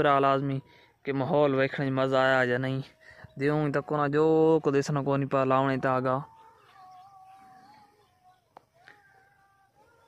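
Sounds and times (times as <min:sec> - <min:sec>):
man's voice: 0:00.0 - 0:10.0.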